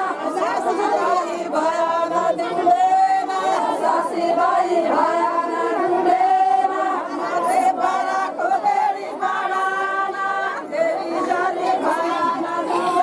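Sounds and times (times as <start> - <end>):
crowd chatter: 0.0 - 13.0
women singing in unison: 0.0 - 13.0.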